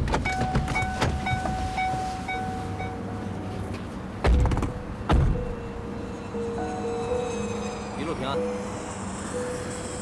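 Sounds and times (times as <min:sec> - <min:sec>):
door-open warning chime beeping: 0:00.2 - 0:03.1.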